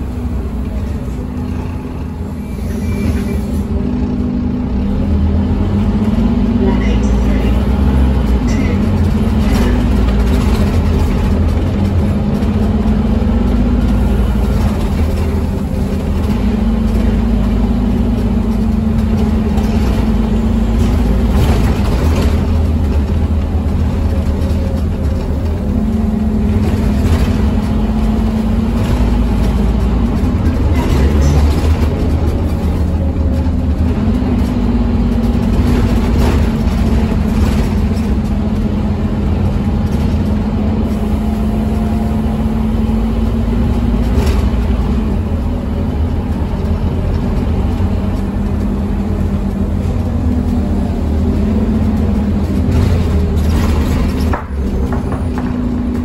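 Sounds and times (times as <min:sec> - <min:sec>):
bus diesel engine changing gears: 0:00.0 - 0:56.0
tyre noise on wet road: 0:00.0 - 0:56.0.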